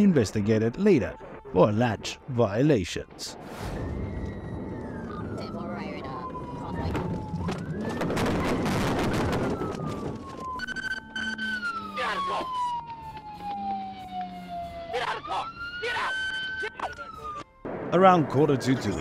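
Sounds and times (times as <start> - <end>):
police siren wailing: 3.6 - 17.7.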